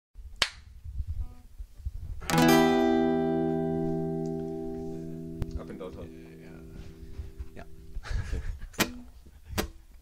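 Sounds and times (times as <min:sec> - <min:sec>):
soft handling thumps: 0:06.7 - 0:07.8.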